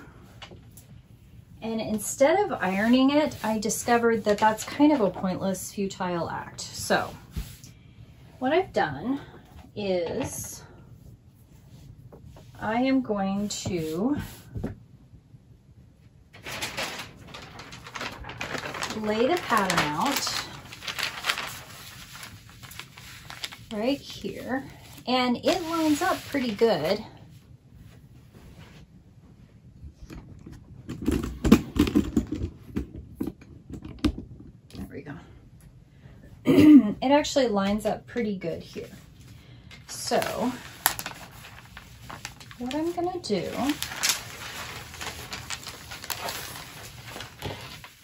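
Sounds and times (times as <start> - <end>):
paper rustling and crinkling: 1.9 - 5.6, 16.4 - 28.8, 38.7 - 48.0
person speaking: 8.4 - 10.7, 18.9 - 21.2, 23.7 - 27.1, 42.6 - 44.0.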